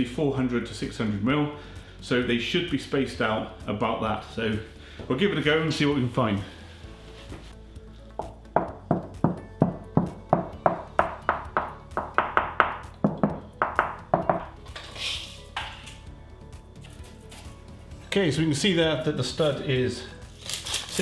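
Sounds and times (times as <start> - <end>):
knuckles knocking on hollow wall: 8.2 - 14.5.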